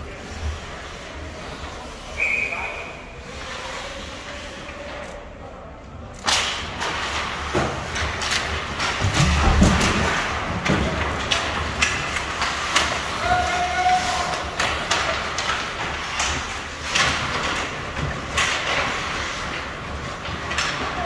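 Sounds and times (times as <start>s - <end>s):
hockey sticks clattering: 6.2s - 21.0s
knocks of sticks and puck: 6.2s - 21.0s
skate blades scraping ice: 6.8s - 21.0s.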